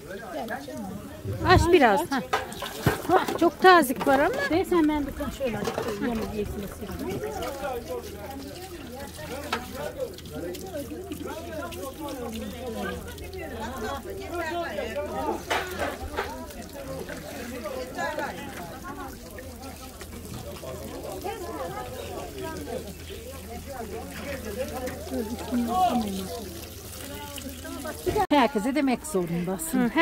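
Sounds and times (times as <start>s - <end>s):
water splashing in a tub: 0.0s - 28.4s
chatter of voices: 0.0s - 30.0s.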